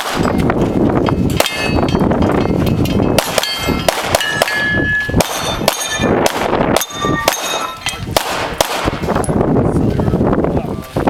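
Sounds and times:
pistol shots: 0.0s - 0.4s, 3.2s - 9.1s
steel plates clanging: 1.1s - 6.2s, 6.8s - 8.0s.

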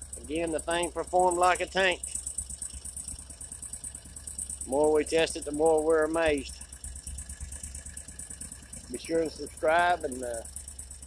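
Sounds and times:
engine idling with rattle: 0.0s - 11.0s.

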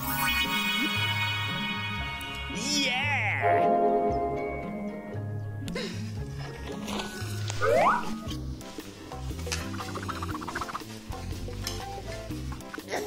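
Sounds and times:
background music with bass line: 0.0s - 13.0s
bright rising swoop: 7.6s - 8.4s.

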